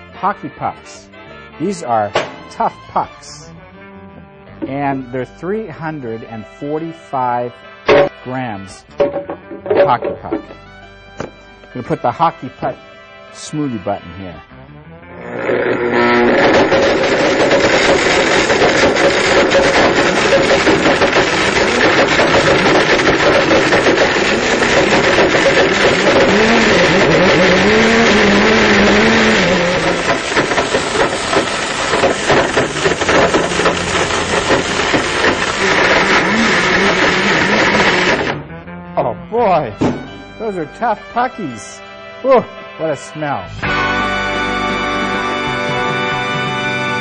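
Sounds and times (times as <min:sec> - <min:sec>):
blender motor running: 0:15.1 - 0:38.4.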